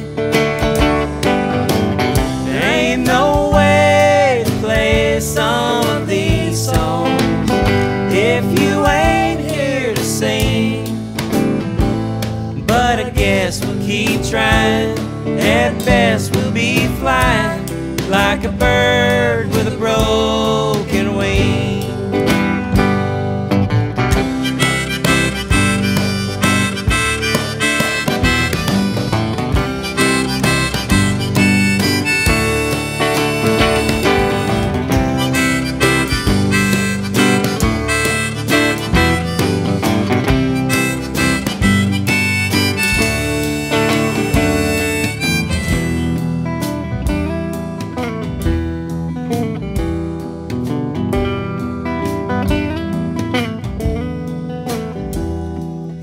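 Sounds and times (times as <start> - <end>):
strummed acoustic guitar: 0.0 - 56.0
harmonica solo: 24.1 - 47.2.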